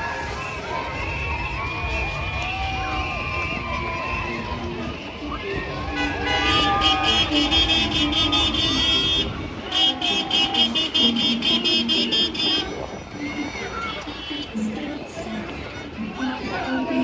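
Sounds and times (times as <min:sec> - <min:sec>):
people shouting and cheering: 0:00.0 - 0:17.0
truck noise: 0:00.0 - 0:17.0.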